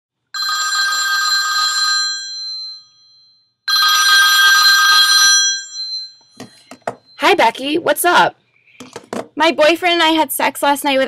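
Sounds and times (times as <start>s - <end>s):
telephone bell ringing: 0.4s - 7.4s.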